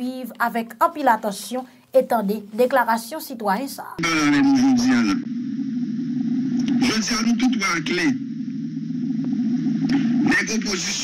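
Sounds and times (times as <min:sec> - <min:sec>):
low droning hum: 0:04.0 - 0:11.0.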